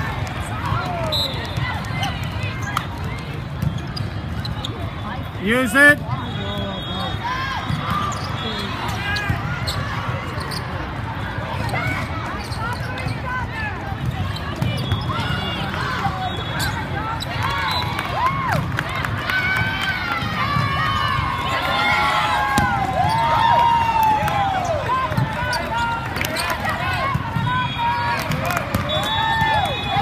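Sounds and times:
hubbub of voices in a hall: 0.0 - 30.0
sneakers squeaking on court floor: 1.3 - 5.0, 7.6 - 10.9, 11.6 - 13.4, 14.0 - 15.7.

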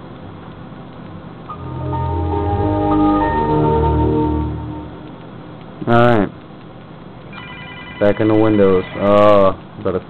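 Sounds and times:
telephone ringing: 7.3 - 9.2.

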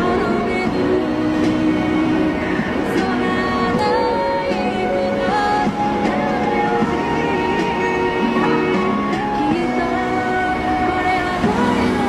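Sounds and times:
woman singing into microphone: 0.0 - 12.0.

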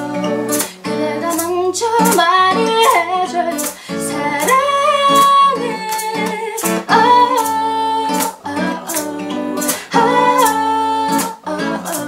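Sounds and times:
strummed acoustic guitar: 0.0 - 12.0
woman singing a ballad: 0.0 - 12.0.

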